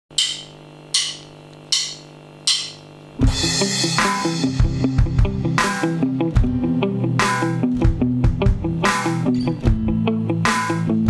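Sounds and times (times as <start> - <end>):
drumsticks clicking: 0.2 - 2.8.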